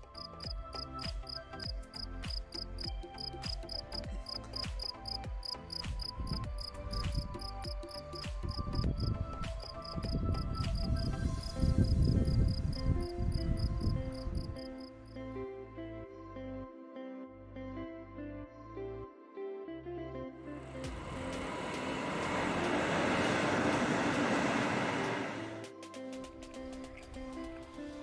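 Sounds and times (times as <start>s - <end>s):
insect chirping: 0.0s - 8.9s
background music: 0.0s - 28.0s
wind rumble on microphone: 6.1s - 14.8s.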